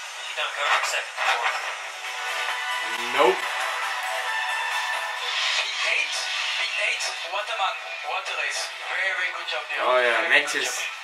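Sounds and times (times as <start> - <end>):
electronic background music: 1.6 - 11.0.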